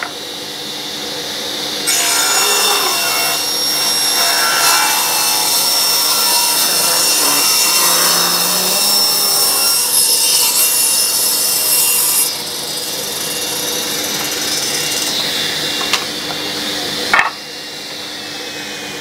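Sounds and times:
table saw cutting wood: 0.0s - 19.0s.

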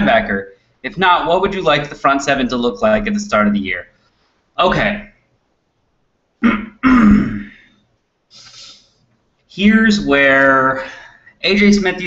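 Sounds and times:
man clearing his throat: 6.4s - 7.7s.

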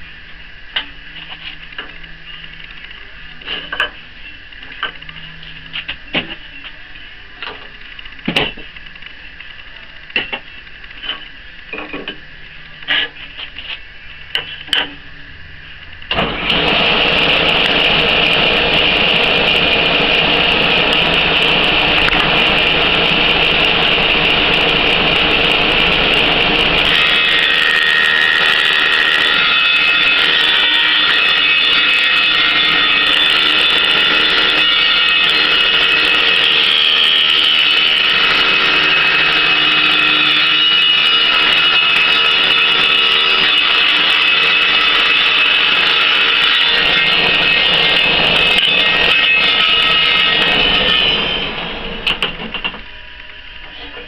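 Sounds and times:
table saw running: 16.1s - 53.4s
saw blade whining through wood: 16.1s - 53.8s.

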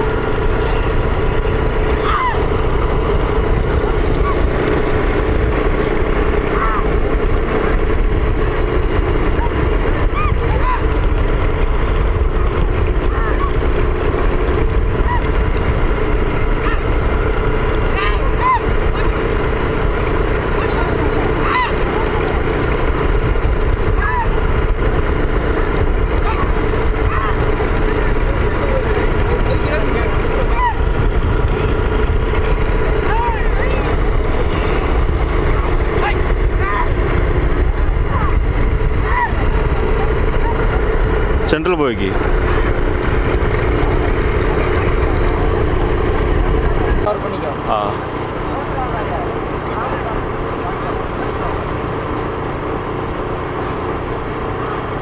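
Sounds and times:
men shouting: 0.0s - 46.2s
motor vehicle running: 0.0s - 55.0s
road and wind noise: 0.0s - 55.0s.

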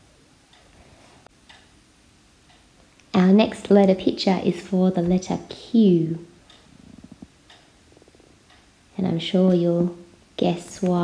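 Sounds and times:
faint ticking: 0.4s - 11.0s.

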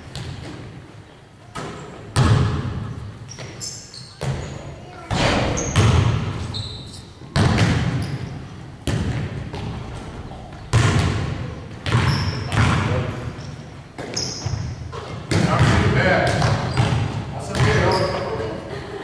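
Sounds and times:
basketballs bouncing on wooden floor: 0.0s - 0.8s, 1.6s - 3.6s, 4.2s - 6.6s, 7.2s - 18.2s.

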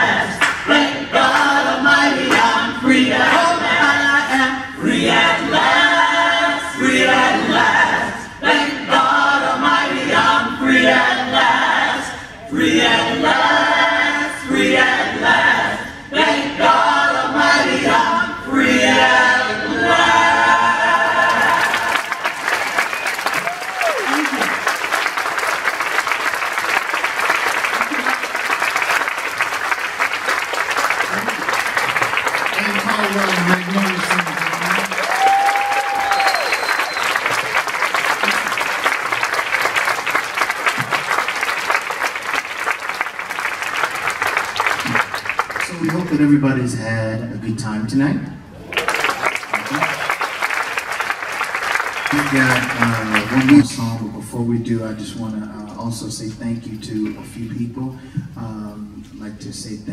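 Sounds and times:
vocal group singing in harmony: 0.0s - 22.6s
audience applauding: 21.0s - 46.3s, 48.6s - 53.7s
audience cheering: 21.2s - 43.6s, 48.6s - 53.6s.

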